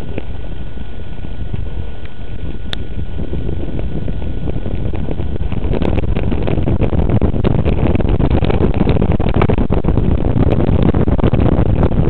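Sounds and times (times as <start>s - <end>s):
wind rushing over camera: 0.0s - 12.0s.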